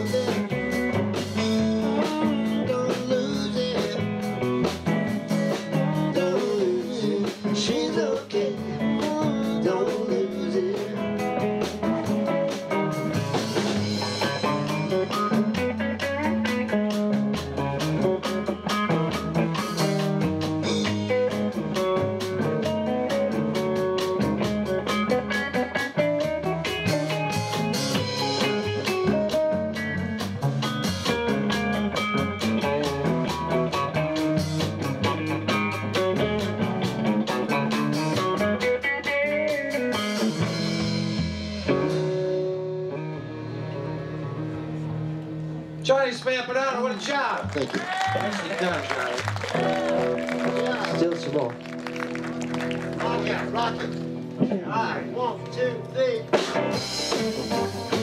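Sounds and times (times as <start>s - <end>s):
electric guitar: 0.0s - 46.4s, 47.0s - 58.0s
live rock band playing: 0.0s - 58.0s.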